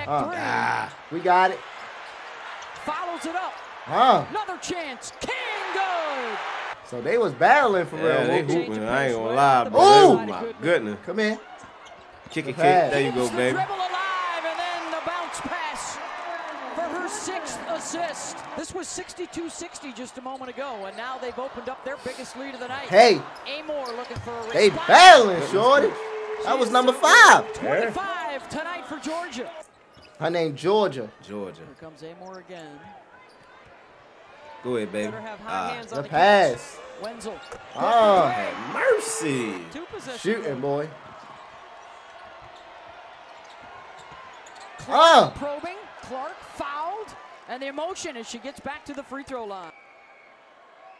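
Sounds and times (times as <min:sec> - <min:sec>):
broadcast voices: 0:12.3 - 0:29.6, 0:34.7 - 0:41.0.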